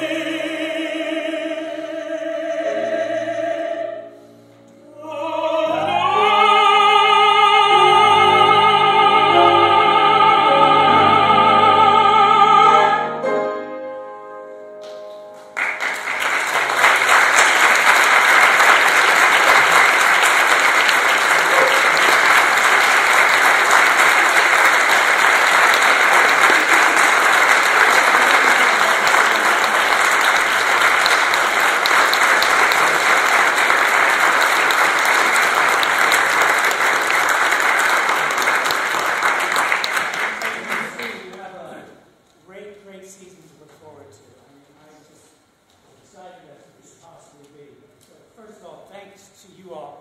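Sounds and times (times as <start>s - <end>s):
audience applauding: 15.5s - 41.5s.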